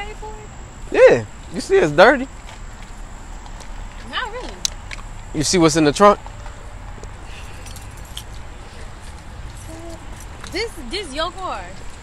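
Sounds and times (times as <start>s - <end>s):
keys jingling: 7.3s - 8.5s.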